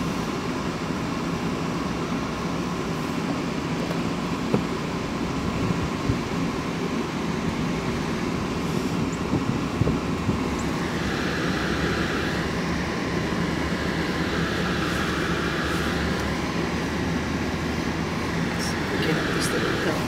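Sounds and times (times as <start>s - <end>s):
engine and tyre rumble: 0.0s - 20.0s
steady high hiss: 10.6s - 20.0s.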